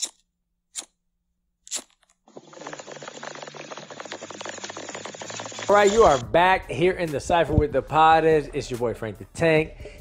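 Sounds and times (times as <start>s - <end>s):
dense fine crackling: 2.4s - 6.2s.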